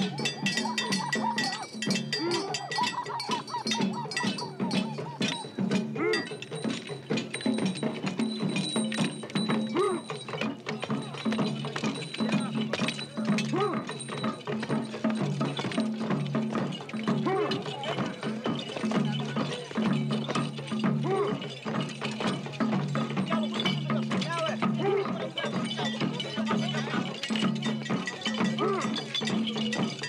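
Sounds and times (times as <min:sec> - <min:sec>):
rising and falling cries: 0:00.0 - 0:06.4
fast drumming and clattering percussion: 0:00.0 - 0:30.0.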